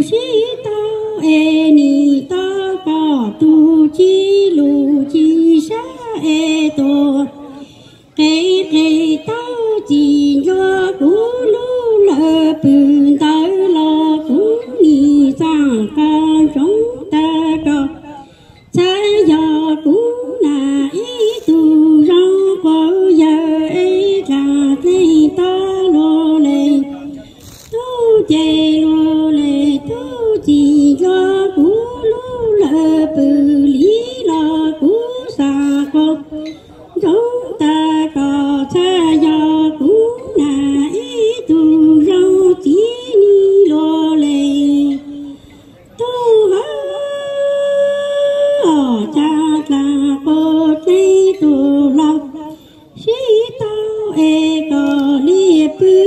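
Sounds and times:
woman singing through microphone: 0.0 - 56.0.

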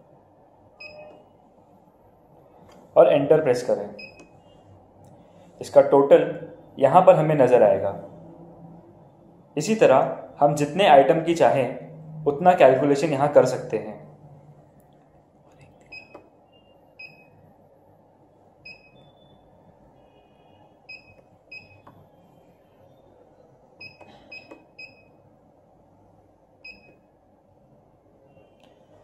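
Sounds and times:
short high keypad beeps: 0.8 - 1.2, 23.8 - 25.1.

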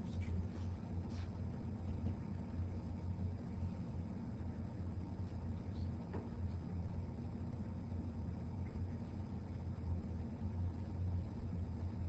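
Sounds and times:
low hum and hiss: 0.0 - 12.0.

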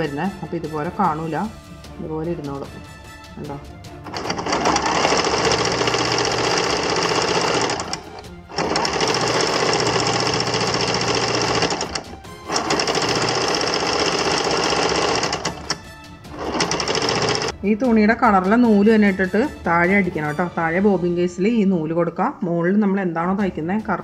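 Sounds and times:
sewing machine stitching: 4.0 - 17.5.

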